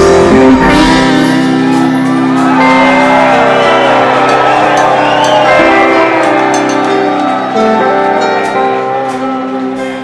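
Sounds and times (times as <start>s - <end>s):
live rock band playing loudly: 0.0s - 10.0s.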